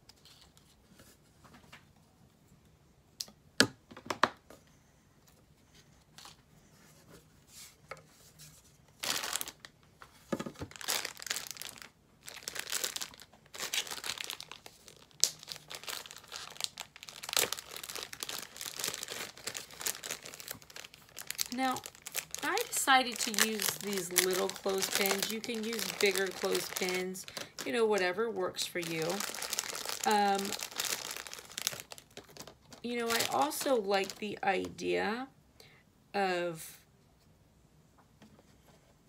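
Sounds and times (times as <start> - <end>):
plastic packet crinkling and tearing: 9.0 - 9.7, 10.6 - 34.4.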